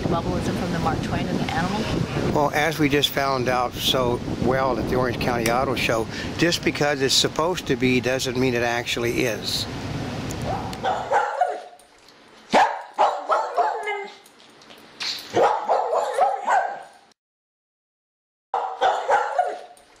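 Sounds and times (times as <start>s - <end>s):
dog barking and yipping: 10.4s - 11.9s, 12.5s - 14.3s, 15.2s - 17.0s, 18.6s - 19.9s.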